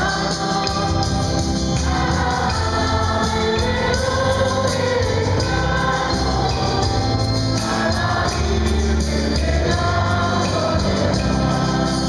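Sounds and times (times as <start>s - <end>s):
electric keyboard: 0.0s - 12.0s
guitar: 0.0s - 12.0s
steady bass: 0.0s - 12.0s.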